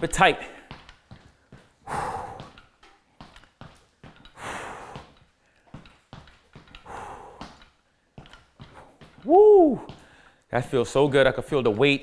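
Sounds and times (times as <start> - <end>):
man exhaling heavily: 1.8 - 2.6.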